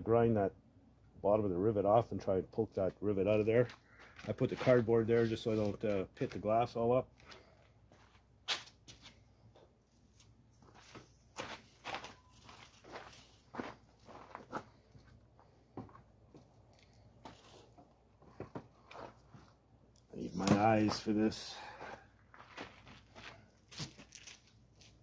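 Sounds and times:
footsteps on gravel: 10.7s - 14.8s, 20.3s - 25.0s.

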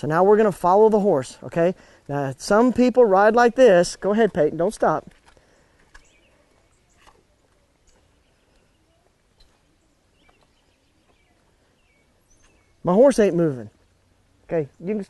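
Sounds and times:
soft scattered clicks: 4.2s - 12.7s
faint bird chirps: 5.4s - 15.0s.

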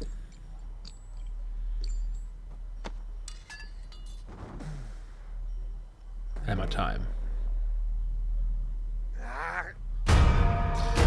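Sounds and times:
light metallic clinks: 0.0s - 4.6s.

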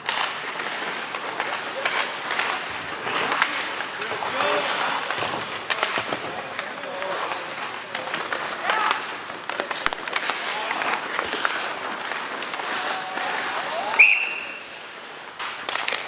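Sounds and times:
hockey sticks and puck clacking: 0.0s - 16.0s
skates scraping on ice: 0.0s - 16.0s
spectators shouting: 12.5s - 14.6s.

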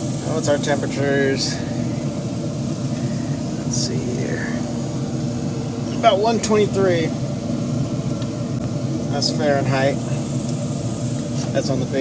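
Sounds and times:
smoker fan hum: 0.0s - 12.0s.

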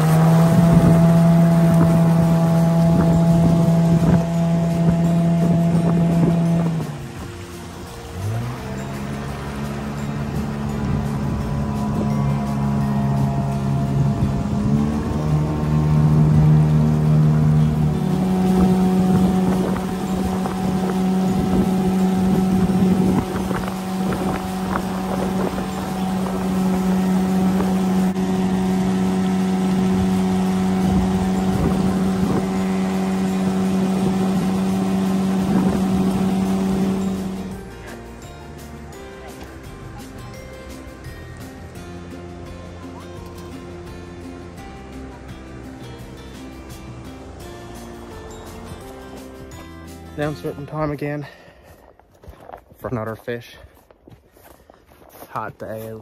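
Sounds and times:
small outboard motor running: 0.0s - 50.9s.

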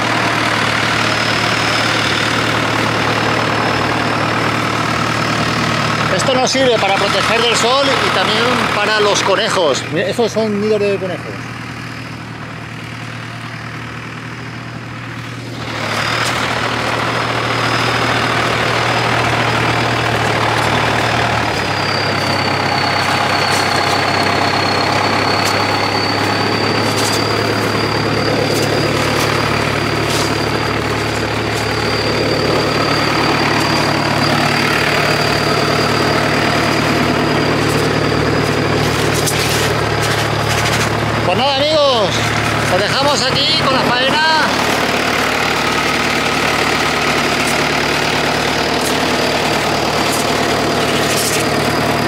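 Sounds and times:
sprayer engine running: 0.0s - 52.0s
thin steady whistle: 17.4s - 40.4s.

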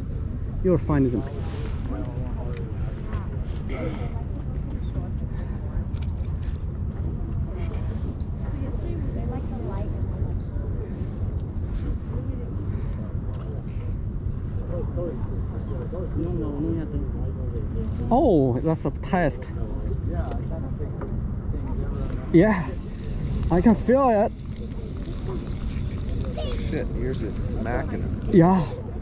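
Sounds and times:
wind rumble on microphone: 0.0s - 18.1s, 19.5s - 29.0s
faint voices talking: 0.0s - 29.0s.

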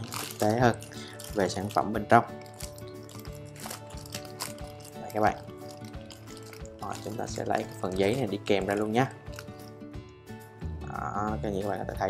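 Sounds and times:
plastic bag rustling and crinkling: 0.0s - 9.9s
quiet background music: 0.0s - 12.0s.

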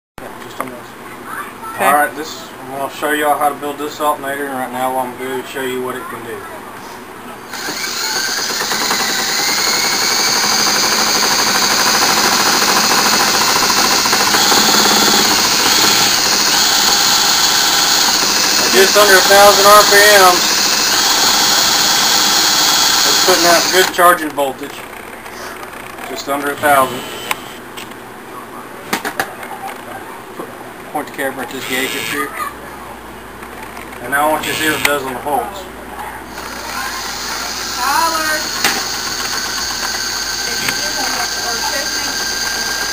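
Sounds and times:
cordless drill whining: 7.5s - 24.0s, 31.6s - 32.3s, 34.4s - 35.0s, 36.3s - 42.9s.

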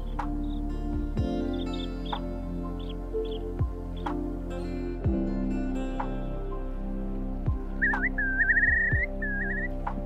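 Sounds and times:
low drum beats: 0.0s - 2.4s, 3.6s - 4.3s, 5.0s - 5.3s, 7.5s - 8.1s, 8.7s - 9.2s
slow instrumental music: 0.0s - 10.0s
bird whistled trill: 7.8s - 9.7s.

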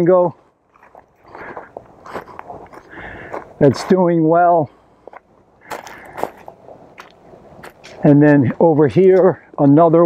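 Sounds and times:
footsteps crunching on mulch: 0.0s - 9.8s.

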